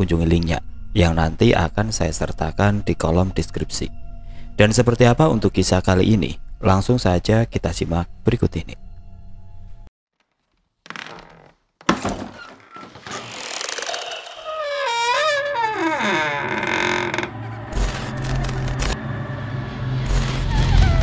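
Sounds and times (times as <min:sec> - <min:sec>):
low rumbling drone: 0:16.4 - 0:21.0.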